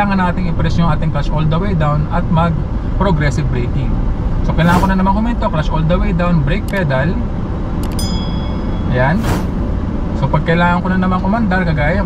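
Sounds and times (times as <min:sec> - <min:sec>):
car engine rumble: 0:00.0 - 0:12.0
road noise inside car: 0:00.0 - 0:12.0
bell-like chime: 0:08.0 - 0:09.2.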